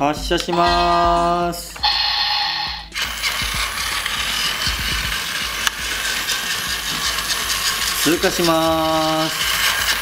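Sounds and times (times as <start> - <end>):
toy train motor whirring: 1.8 - 10.0.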